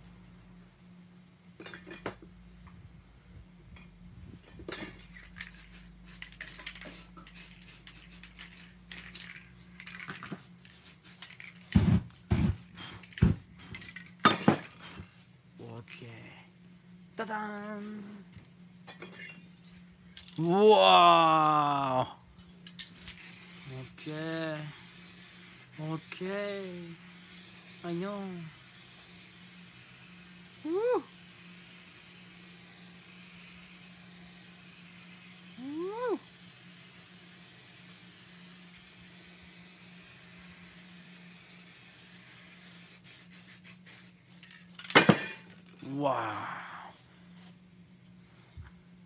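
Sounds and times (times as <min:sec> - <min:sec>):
spray can set down hard: 0:04.6 - 0:10.5, 0:11.2 - 0:15.2, 0:44.3 - 0:45.8
short voice sound: 0:20.4 - 0:22.2, 0:30.6 - 0:31.1, 0:35.6 - 0:36.3, 0:45.8 - 0:47.0
faint hiss: 0:20.4 - 0:47.7
faint steady hum: 0:44.1 - 0:49.0.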